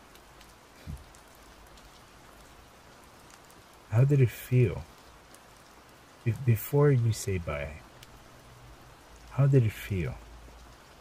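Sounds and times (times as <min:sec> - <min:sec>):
steady rain: 0:00.0 - 0:11.0
man speaking: 0:03.9 - 0:04.9, 0:06.3 - 0:07.8, 0:09.3 - 0:10.2.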